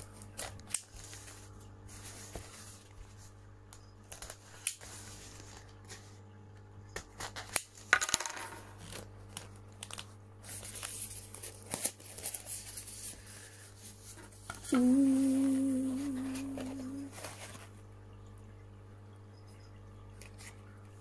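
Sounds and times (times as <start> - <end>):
faint steady hum: 0.0 - 21.0.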